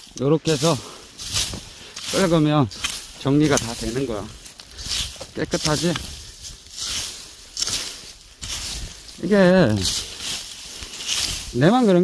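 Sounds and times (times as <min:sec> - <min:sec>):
tool dragged through dry grass: 0:00.0 - 0:12.0.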